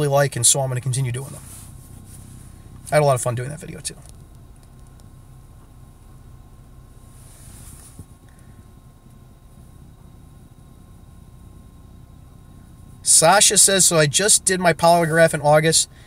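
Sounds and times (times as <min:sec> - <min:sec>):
low rumble in car cabin: 0:00.0 - 0:16.0.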